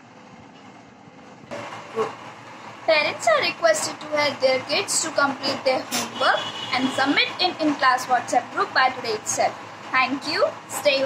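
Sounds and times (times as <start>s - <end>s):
woman speaking: 2.9s - 11.0s.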